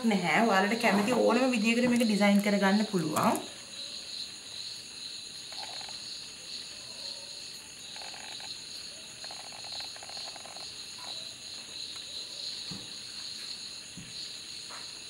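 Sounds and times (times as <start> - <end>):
high-pitched insect chirring: 0.6 - 12.7
buzzy frog croaks: 5.5 - 6.1, 7.8 - 11.2.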